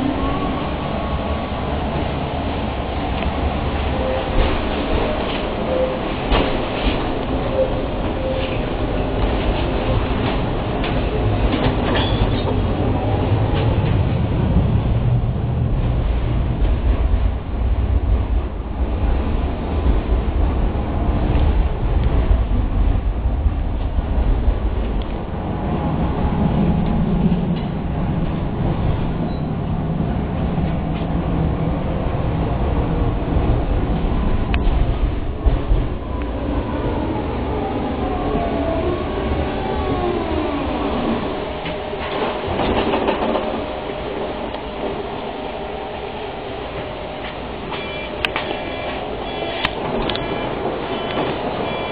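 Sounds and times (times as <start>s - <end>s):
tram wheels rumbling on rails: 0.0s - 51.9s.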